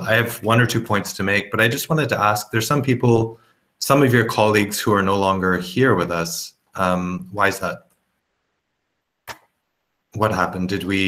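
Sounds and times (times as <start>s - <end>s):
short sharp click: 9.3s - 9.6s.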